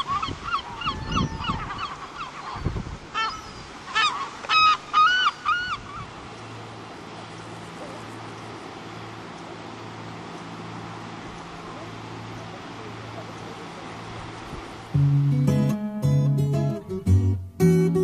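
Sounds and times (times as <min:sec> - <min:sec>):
gull calling: 0:00.0 - 0:06.2
low background noise: 0:01.6 - 0:18.0.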